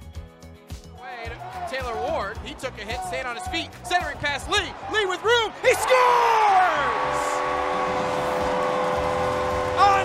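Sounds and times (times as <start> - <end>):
crowd cheering: 1.2 - 10.0
goal horn chord: 7.0 - 10.0.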